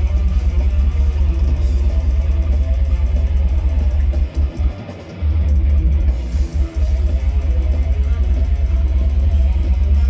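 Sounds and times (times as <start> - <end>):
distorted electric guitar: 0.0 - 10.0
heavy drum kit: 0.0 - 10.0.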